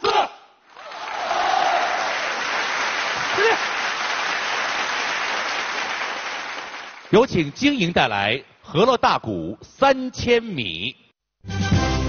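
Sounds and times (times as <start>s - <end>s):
audience applauding: 0.7s - 7.5s.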